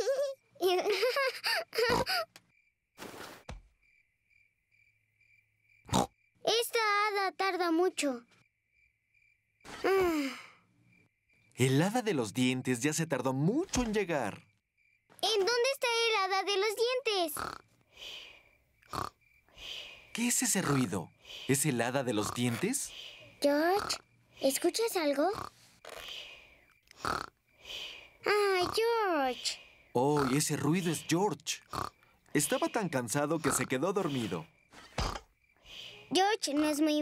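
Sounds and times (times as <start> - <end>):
girl sighing: 9.7 - 10.6
cartoon piglet snoring: 17.3 - 17.6, 18.9 - 19.2, 20.6 - 20.9, 23.6 - 24.0, 25.2 - 26.1, 26.9 - 27.3, 28.2 - 29.0, 30.2 - 30.4.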